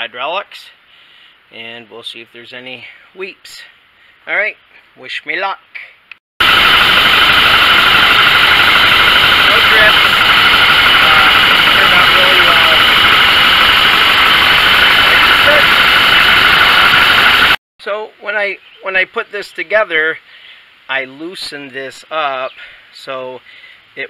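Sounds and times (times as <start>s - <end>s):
diesel engine running: 6.4s - 17.6s.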